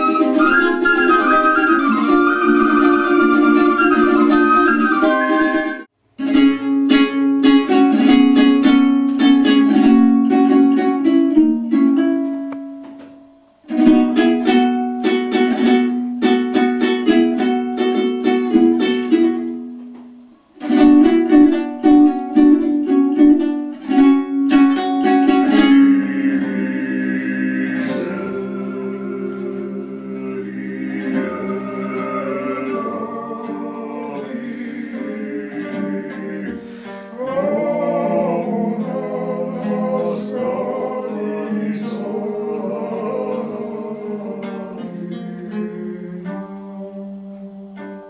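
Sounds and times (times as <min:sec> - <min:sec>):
men singing long notes: 0:00.0 - 0:05.8, 0:25.1 - 0:47.8
plucked lute strummed: 0:00.0 - 0:48.0.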